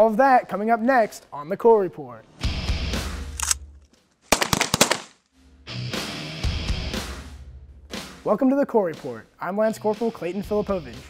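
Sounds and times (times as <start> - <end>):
theme music with bass beat: 2.4 - 3.4, 5.4 - 11.0
burst of sharp cracks: 4.2 - 5.3.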